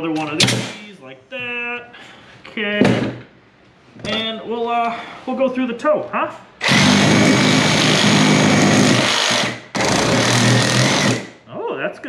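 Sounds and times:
reciprocating saw cutting metal: 6.6s - 11.3s.

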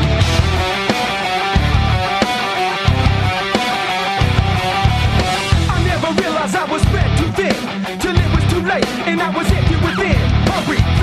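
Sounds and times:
pulsing bass notes: 0.0s - 2.2s, 2.8s - 3.5s, 4.1s - 6.2s, 6.8s - 7.4s, 9.5s - 11.0s
drum hits: 0.0s - 7.2s
electric guitars: 0.0s - 11.0s.

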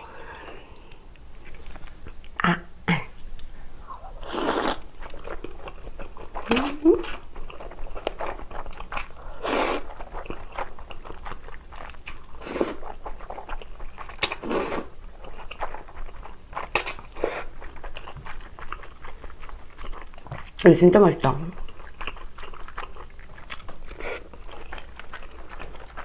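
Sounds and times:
wet chewing and mouth sounds: 0.6s - 2.4s, 3.1s - 26.0s.

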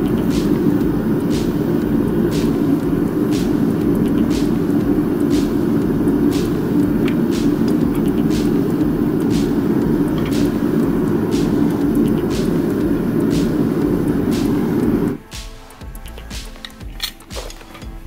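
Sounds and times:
furnace burner flame roaring: 0.0s - 15.3s.

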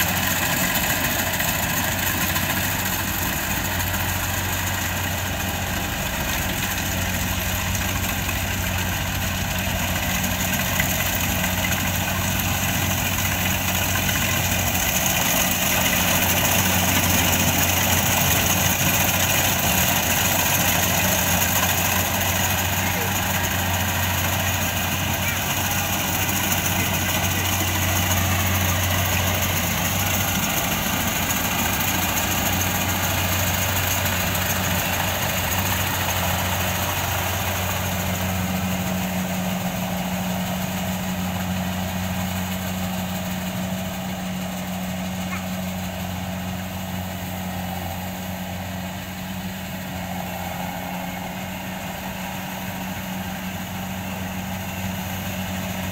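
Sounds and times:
threshing machinery rattle: 0.0s - 47.4s
combine harvester engine hum: 0.0s - 55.9s.

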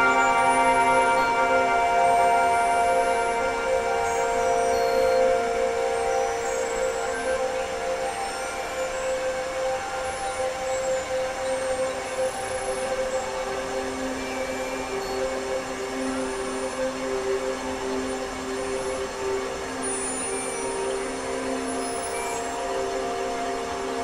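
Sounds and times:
noisy hiss: 0.0s - 24.0s.

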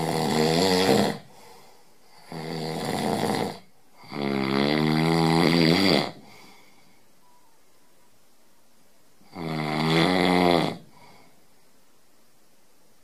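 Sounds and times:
man snoring loudly: 0.0s - 1.3s, 2.2s - 6.2s, 9.3s - 10.9s.

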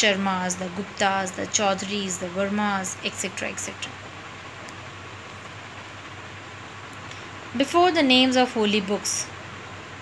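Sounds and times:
background hiss: 0.0s - 10.0s
faint low hum: 0.0s - 10.0s.

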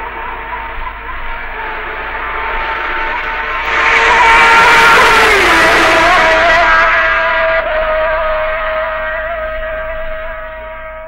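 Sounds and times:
racing motorcycle engine wailing: 0.0s - 11.0s.

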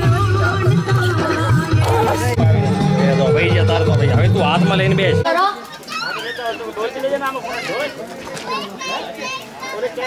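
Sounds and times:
children talking and calling out: 1.0s - 2.4s, 5.2s - 10.0s.

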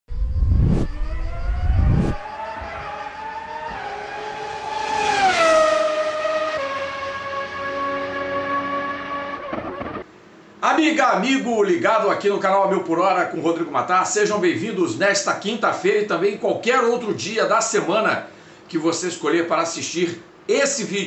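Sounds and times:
race car engine passing by: 0.3s - 10.0s.

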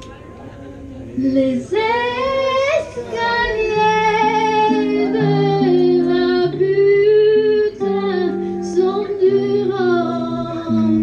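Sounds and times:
woman singing: 1.2s - 11.0s.

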